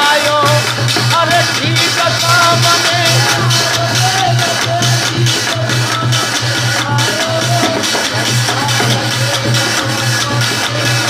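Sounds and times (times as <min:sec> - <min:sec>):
hand drum rhythm: 0:00.0 - 0:11.0
metal plate beaten on pot: 0:00.0 - 0:11.0.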